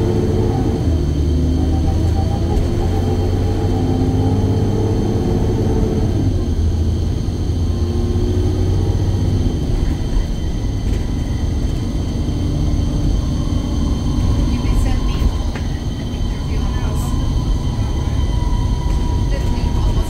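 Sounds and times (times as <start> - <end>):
bus engine drone with whine: 0.0 - 20.0.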